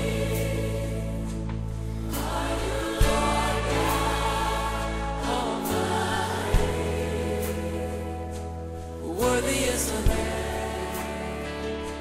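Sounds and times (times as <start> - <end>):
choir singing: 0.0 - 12.0
held bass notes: 0.0 - 12.0.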